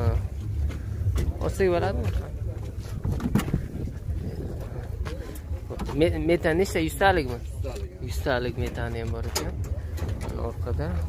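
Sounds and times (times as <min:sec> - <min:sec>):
man talking: 0:00.0 - 0:00.4, 0:01.2 - 0:03.2, 0:04.1 - 0:11.0
steady low hum: 0:00.0 - 0:11.0.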